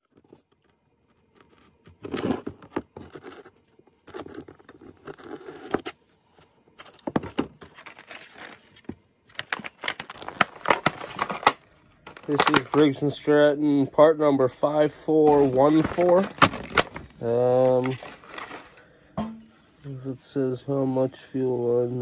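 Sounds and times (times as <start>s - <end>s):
packaging rustling and tearing: 6.8s - 13.2s, 15.2s - 18.8s.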